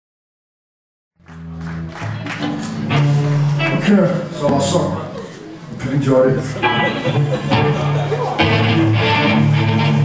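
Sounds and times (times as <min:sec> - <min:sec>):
live rock band playing: 0:01.5 - 0:05.0, 0:06.4 - 0:10.0.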